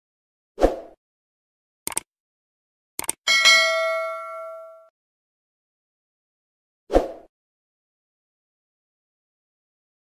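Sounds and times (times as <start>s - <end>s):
double mouse click: 1.9s - 2.1s, 3.0s - 3.2s
notification bell ding: 3.3s - 4.9s.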